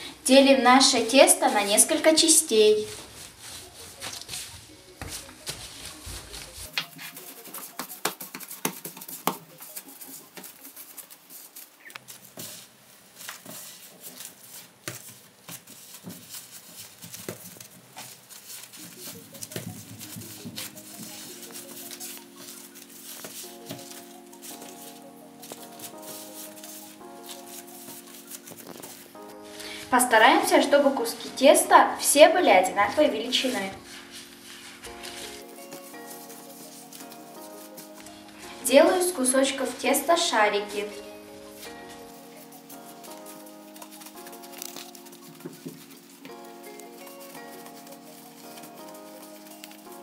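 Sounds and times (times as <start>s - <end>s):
quiet background music: 0.0s - 50.0s
dough being pulled and pressed: 2.2s - 31.5s, 32.8s - 39.0s, 40.5s - 50.0s.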